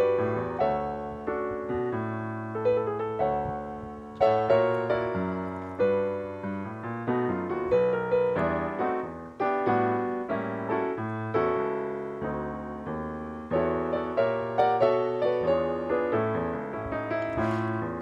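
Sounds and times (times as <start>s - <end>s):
piano chords: 0.0s - 18.0s.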